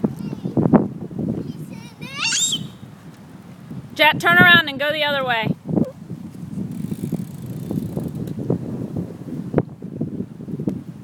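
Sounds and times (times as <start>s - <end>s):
wind buffeting microphone: 0.0s - 11.0s
bike tyres rumbling on concrete: 3.0s - 11.0s.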